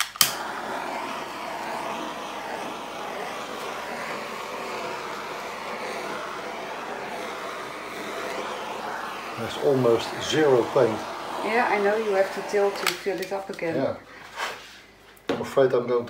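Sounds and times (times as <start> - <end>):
torch igniter click: 0.0 - 0.9, 12.2 - 13.7
torch flame hissing: 0.0 - 14.9.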